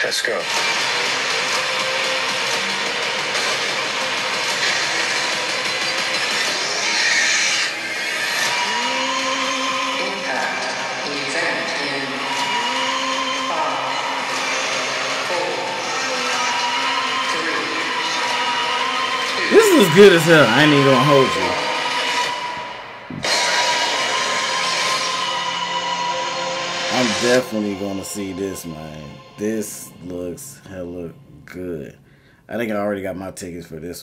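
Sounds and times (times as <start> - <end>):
film trailer sound effects and score: 0.0 - 30.7.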